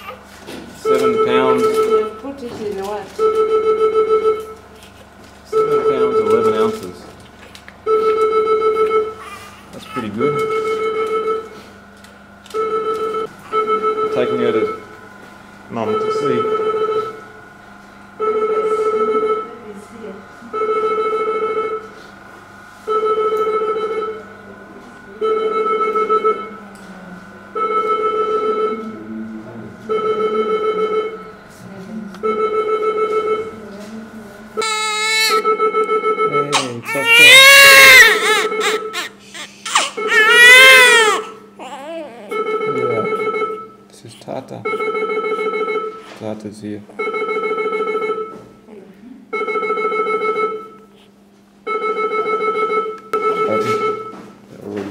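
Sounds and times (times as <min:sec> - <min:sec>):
newborn baby crying: 0:00.0 - 0:00.2, 0:09.2 - 0:10.2, 0:34.6 - 0:35.5, 0:36.5 - 0:42.4
electronic alarm beeping: 0:00.8 - 0:02.3, 0:03.2 - 0:04.6, 0:05.5 - 0:06.8, 0:07.8 - 0:09.2, 0:10.2 - 0:11.6, 0:12.6 - 0:15.0, 0:15.8 - 0:17.2, 0:35.0 - 0:39.0, 0:42.3 - 0:43.8, 0:44.6 - 0:46.0, 0:47.0 - 0:48.4, 0:49.3 - 0:50.9, 0:51.7 - 0:54.2.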